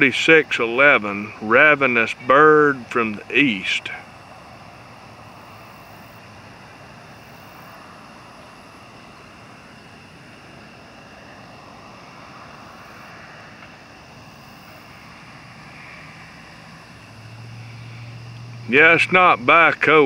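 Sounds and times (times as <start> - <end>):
faint high buzz: 0.0 - 20.0
low-level rush: 0.0 - 20.0.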